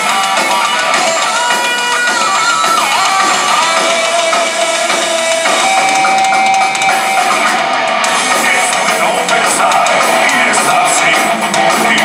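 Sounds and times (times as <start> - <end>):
distorted electric guitar lead: 0.0 - 12.0
drums: 0.0 - 12.0.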